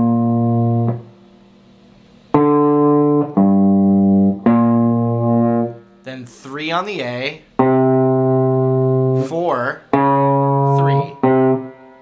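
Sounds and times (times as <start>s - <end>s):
electric guitar low notes: 0.0s - 6.6s, 7.3s - 12.0s.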